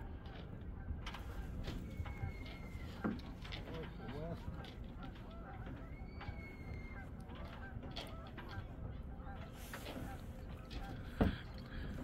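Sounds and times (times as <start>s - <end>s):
geese honking: 0.2s - 12.0s.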